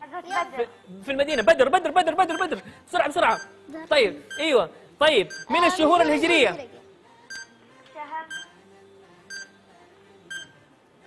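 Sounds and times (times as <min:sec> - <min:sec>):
timer beeping: 0:00.3 - 0:06.0, 0:07.3 - 0:07.6, 0:08.3 - 0:10.7.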